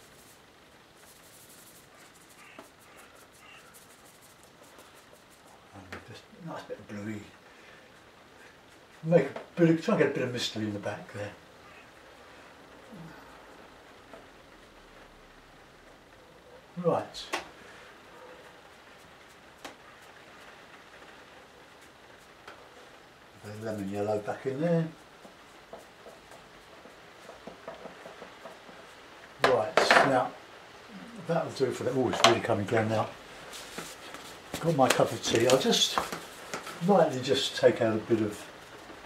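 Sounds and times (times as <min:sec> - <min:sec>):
brush strokes on paper: 0:00.0 - 0:06.7, 0:17.7 - 0:20.8, 0:21.6 - 0:29.1, 0:32.8 - 0:38.4
faint hiss of rain: 0:00.0 - 0:39.0
person speaking: 0:23.4 - 0:25.1, 0:29.4 - 0:33.2, 0:33.8 - 0:38.6.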